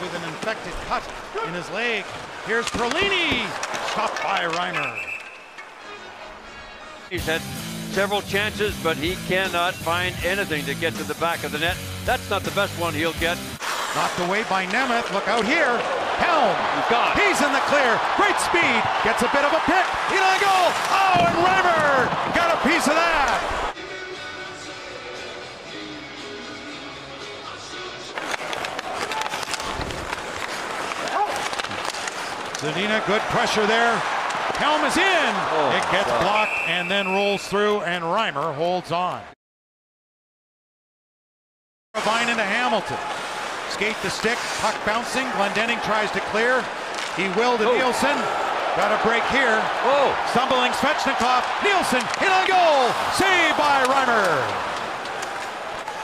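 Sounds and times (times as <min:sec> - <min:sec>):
crowd noise: 0:00.0 - 0:07.3, 0:13.6 - 0:39.3, 0:42.0 - 0:56.0
hockey sticks and puck clacking: 0:00.1 - 0:05.9, 0:12.2 - 0:17.8, 0:18.8 - 0:23.5, 0:28.1 - 0:37.3, 0:42.0 - 0:56.0
music: 0:05.8 - 0:13.6, 0:23.8 - 0:28.5.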